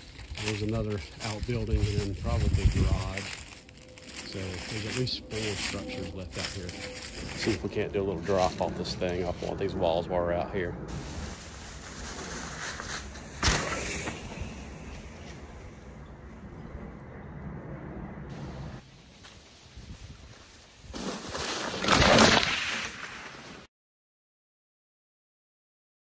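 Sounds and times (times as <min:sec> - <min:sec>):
bike rolling through dry leaves: 0:00.0 - 0:10.0, 0:10.9 - 0:15.6, 0:18.3 - 0:23.7
loud rustling near microphone: 0:10.9 - 0:14.0
bike landing thud: 0:12.6 - 0:14.8, 0:20.8 - 0:23.5.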